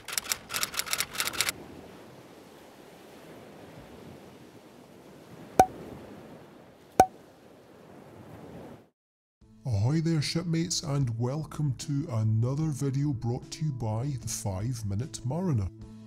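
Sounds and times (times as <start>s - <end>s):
ocean waves: 0.0s - 8.9s.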